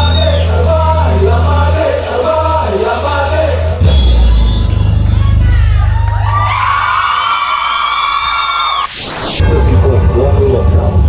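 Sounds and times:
live band music: 0.0 - 5.4
bass beat: 0.0 - 6.8
crowd cheering: 0.0 - 11.0.

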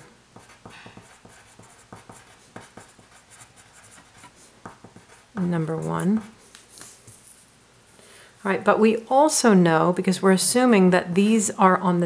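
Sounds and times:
pencil scratching on paper: 0.0 - 6.4.

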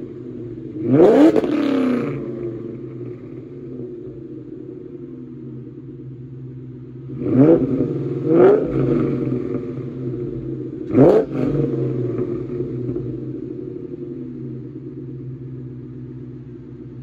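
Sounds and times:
car engine idling and revving: 0.0 - 17.0.

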